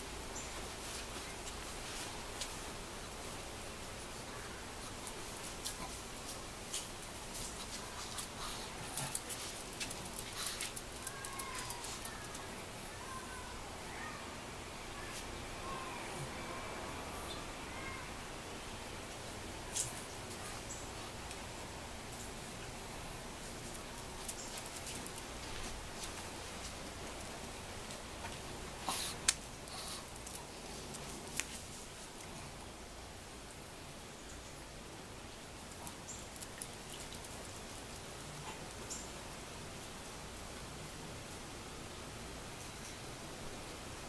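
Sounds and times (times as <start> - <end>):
steady background hiss: 0.0 - 44.0.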